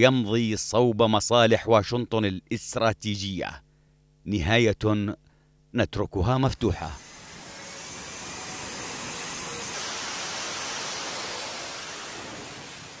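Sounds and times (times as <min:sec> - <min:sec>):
fighter jet engines roaring: 0:06.6 - 0:13.0.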